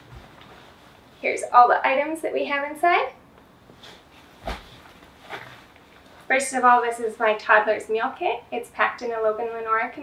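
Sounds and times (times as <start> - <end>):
fabric rustle: 0.0 - 1.3, 3.6 - 6.4
bag thumping onto bed: 4.4 - 4.8.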